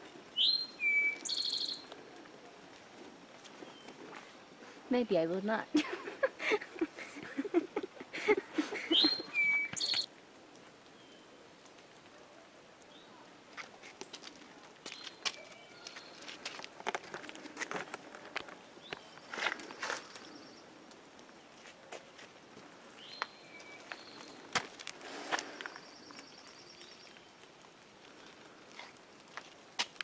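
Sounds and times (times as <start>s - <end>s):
bird chirps: 0.4s - 1.9s, 8.9s - 10.1s
person laughing: 5.7s - 9.4s
footstep clicks on trail: 9.5s - 10.1s, 13.5s - 27.2s, 28.1s - 30.0s.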